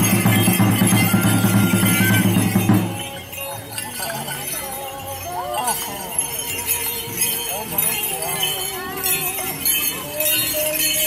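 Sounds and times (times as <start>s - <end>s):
bells and rattles jingling: 0.0s - 11.0s
thin held melody: 0.0s - 11.0s
voices: 0.0s - 11.0s.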